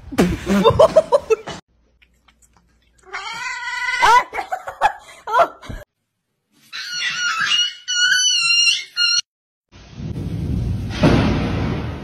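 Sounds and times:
cats meowing: 3.0 - 4.2.

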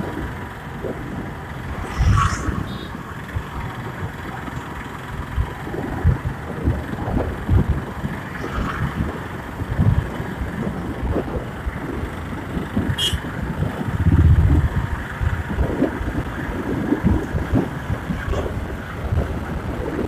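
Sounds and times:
motorcycle engine: 0.0 - 19.7
wind buffeting microphone: 0.0 - 20.0.

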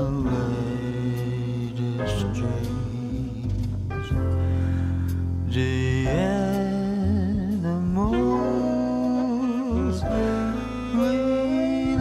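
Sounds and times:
jazz ballad with piano bass drums: 0.0 - 12.0.

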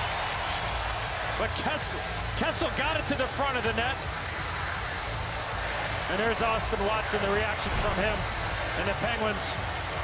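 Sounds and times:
arena crowd cheering: 0.0 - 10.0.

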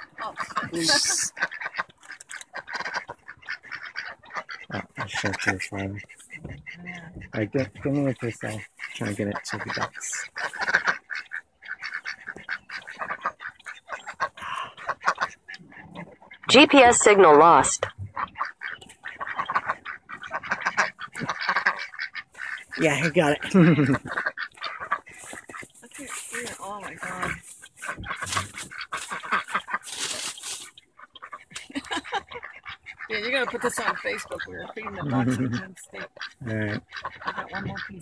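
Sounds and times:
ducks quacking: 0.0 - 38.0.

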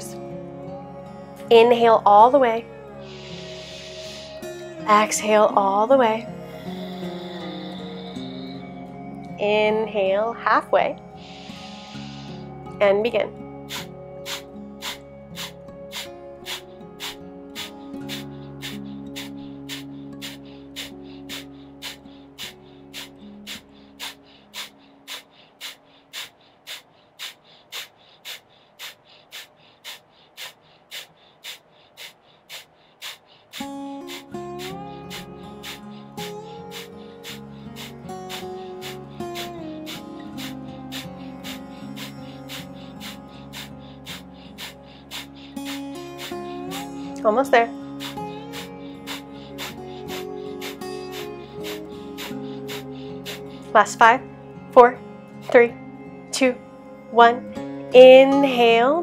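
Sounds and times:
soft background music: 0.0 - 27.4, 33.5 - 59.0
forceful nasal exhales: 3.0 - 4.4, 6.6 - 8.7, 11.2 - 12.6, 13.6 - 47.2, 47.8 - 53.7.

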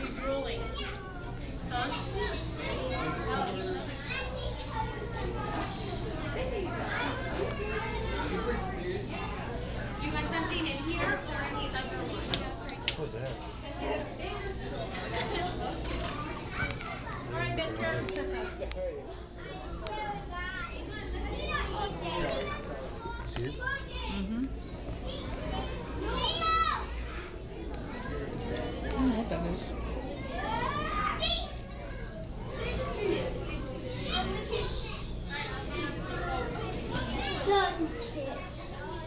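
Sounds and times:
children babbling: 0.0 - 12.2, 25.0 - 28.6, 29.7 - 39.0.

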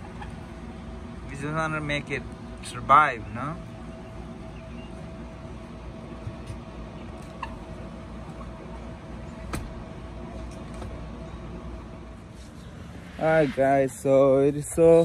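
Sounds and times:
faint hum: 0.0 - 15.0.

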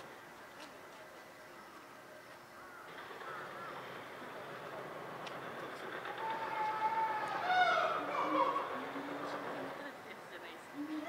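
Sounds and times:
people talking: 8.0 - 11.0.

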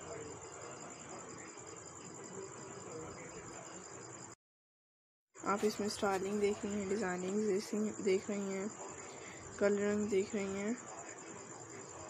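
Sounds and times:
faint background noise: 0.0 - 4.4, 5.4 - 12.0.

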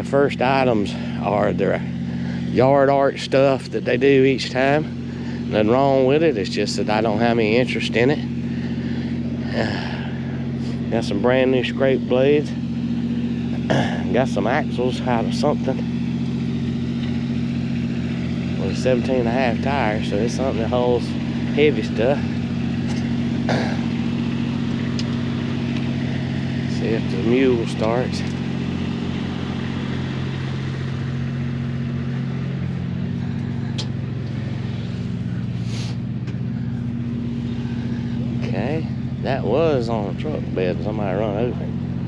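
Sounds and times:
engine idling: 0.0 - 42.0.

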